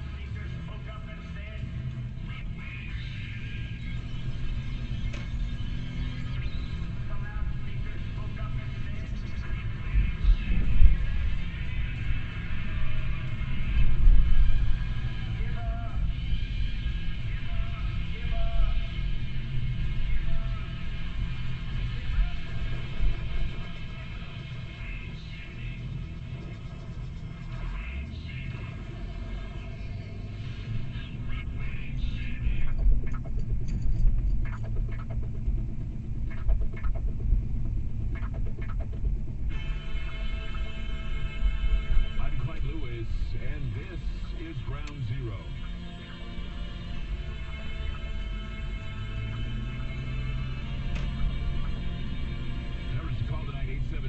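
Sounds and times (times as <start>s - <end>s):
car road rumble: 0.0s - 54.0s
music from car radio: 0.0s - 54.0s
car rumbling from inside: 28.6s - 39.6s.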